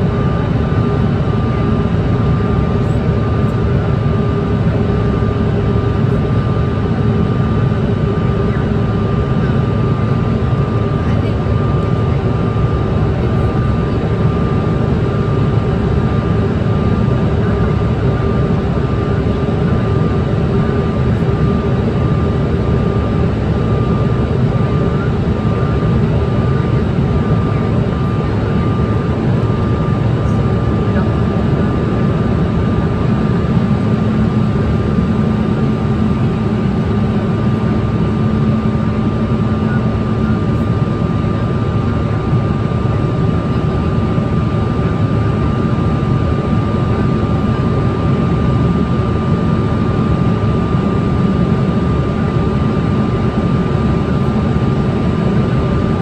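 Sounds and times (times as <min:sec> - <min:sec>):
airliner engine and airflow rush: 0:00.0 - 0:56.0
thin steady whine: 0:00.0 - 0:56.0.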